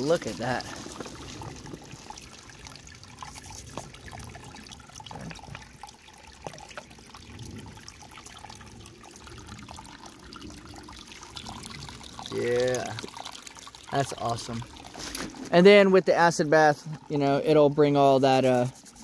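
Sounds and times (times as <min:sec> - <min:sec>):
water trickling over rocks: 0:00.0 - 0:19.0
toothbrush scrubbing crystal: 0:18.2 - 0:19.0.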